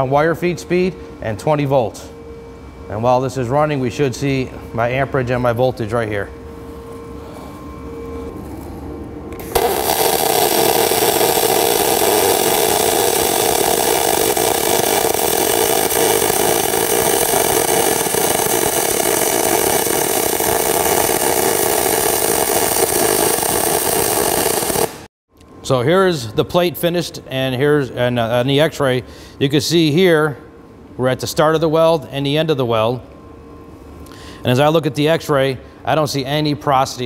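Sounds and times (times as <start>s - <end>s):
welding arc sizzling: 9.4s - 25.1s.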